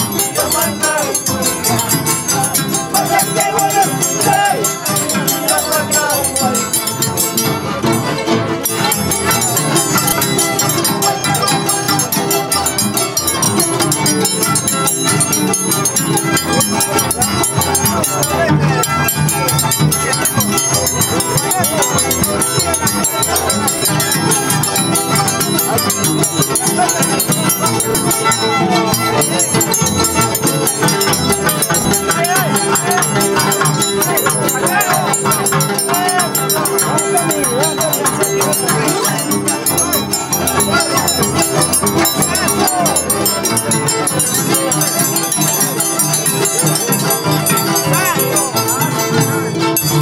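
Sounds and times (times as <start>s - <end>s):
harps and violins playing: 0.0s - 50.0s.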